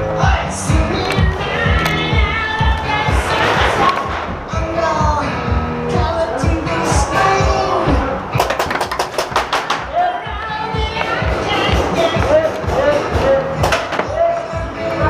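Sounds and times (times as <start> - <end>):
person singing: 0.0 - 8.4, 9.8 - 15.0
music with steady beat: 0.0 - 15.0.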